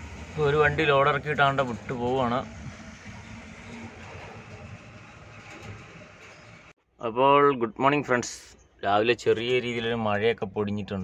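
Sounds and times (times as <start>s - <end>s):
truck rumble and road noise: 0.0s - 6.8s.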